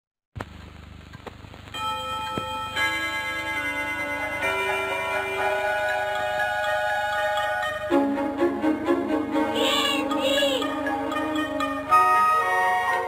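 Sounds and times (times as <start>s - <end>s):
clock chiming tones: 1.8s - 7.9s, 9.7s - 13.0s
cartoon clock ticking: 4.6s - 7.9s, 9.6s - 13.0s.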